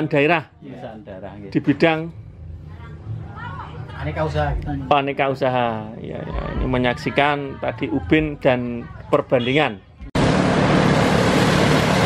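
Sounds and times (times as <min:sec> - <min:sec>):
rice thresher engine running: 0:10.2 - 0:12.0.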